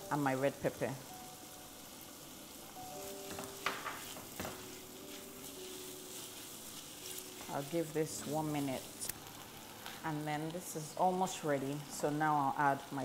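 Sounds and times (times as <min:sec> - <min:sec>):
vegetables sizzling in oil: 0:00.0 - 0:13.0
wooden spatula stirring: 0:03.1 - 0:10.0.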